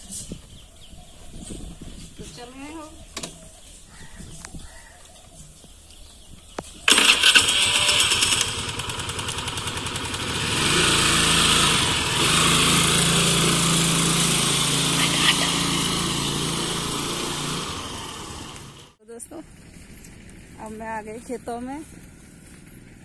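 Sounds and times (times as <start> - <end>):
scooter engine starting and running: 6.6 - 20.8.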